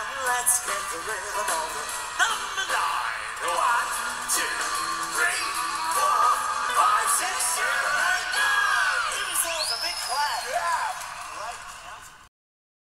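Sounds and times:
song: 0:00.2 - 0:11.8
children cheering and screaming: 0:04.9 - 0:12.0.

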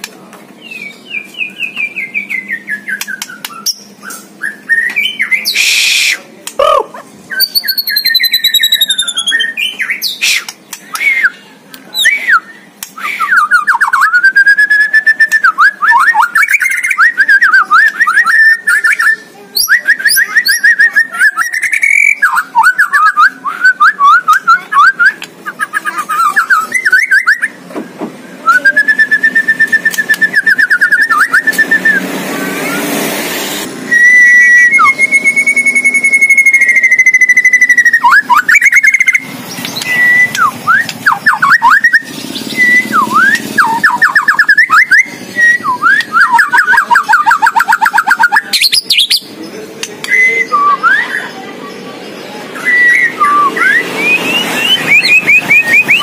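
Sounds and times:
songbird singing: 0:00.6 - 0:05.6, 0:06.5 - 0:27.6, 0:33.9 - 0:56.0.

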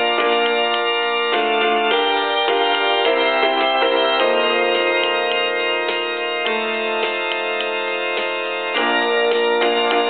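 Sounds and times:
keyboard playing hymn chords: 0:00.0 - 0:10.0.

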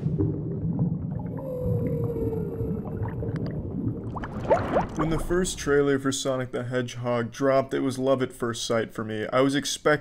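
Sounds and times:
low watery rumble: 0:00.0 - 0:08.1
whale call: 0:01.3 - 0:03.5.

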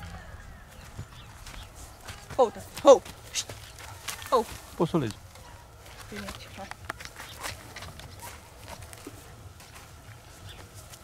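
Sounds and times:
horse hoof steps on dirt: 0:00.0 - 0:11.0.

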